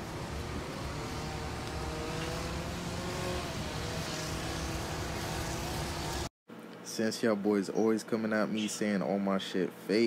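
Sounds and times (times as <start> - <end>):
car engine hum: 0.0 - 6.3
road rumble: 0.0 - 6.3.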